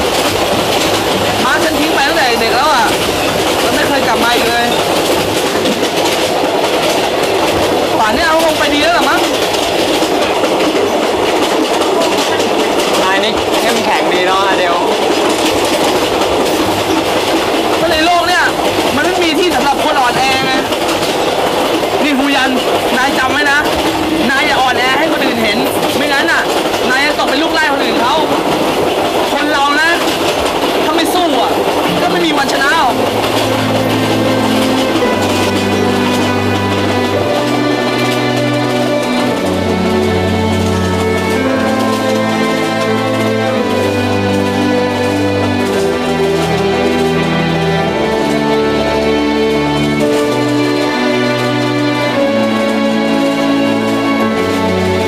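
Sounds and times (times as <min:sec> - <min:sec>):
train rumbling on rails: 0:00.0 - 0:55.0
wheel clatter over track: 0:00.0 - 0:55.0
music: 0:31.0 - 0:55.0.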